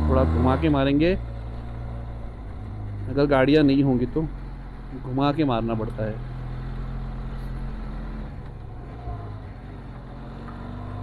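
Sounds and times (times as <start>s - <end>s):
motorcycle engine under load: 0.0s - 11.0s.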